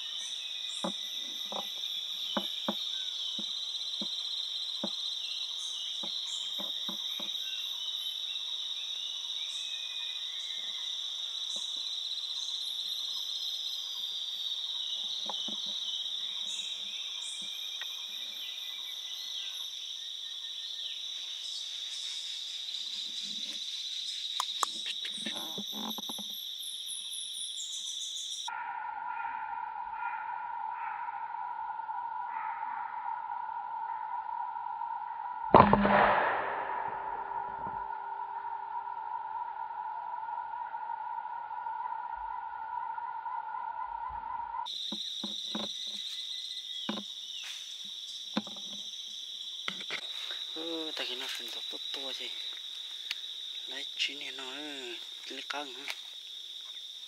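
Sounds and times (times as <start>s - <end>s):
insect chorus drone: 0.0s - 57.0s
low-pitched steady drone: 35.5s - 38.6s.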